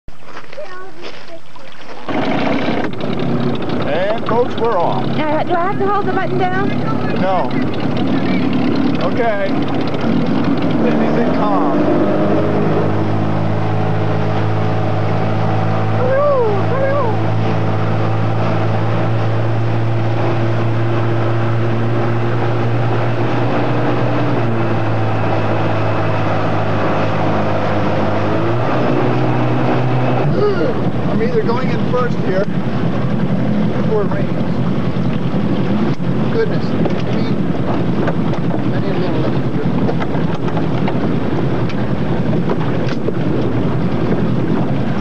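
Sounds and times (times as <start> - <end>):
motorboat engine droning: 1.0 - 45.0
wind rushing over microphone: 6.3 - 45.0.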